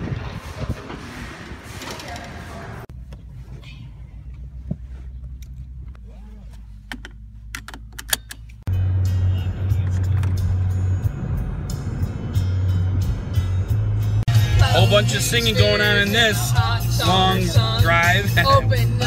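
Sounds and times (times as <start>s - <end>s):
car driving at highway speed: 0.0s - 19.0s
car engine idling rumble: 0.0s - 19.0s
music playing: 8.7s - 19.0s.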